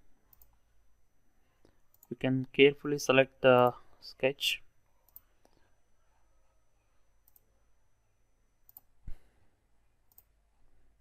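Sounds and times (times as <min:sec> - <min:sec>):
computer mouse clicks: 0:00.3 - 0:00.6, 0:01.9 - 0:02.2, 0:05.0 - 0:05.6, 0:07.2 - 0:07.5, 0:08.6 - 0:08.9, 0:10.1 - 0:10.3.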